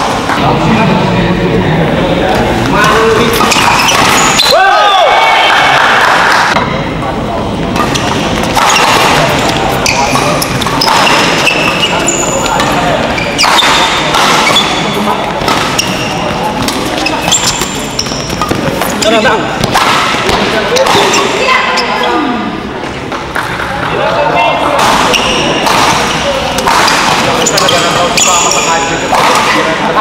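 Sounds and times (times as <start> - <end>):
voices in hall: 0.0 - 30.0
shoes squeaking on court: 2.6 - 4.5, 7.8 - 22.2, 24.6 - 29.7
racket hitting shuttlecock: 3.3 - 4.5, 7.7 - 21.5, 24.6 - 29.8.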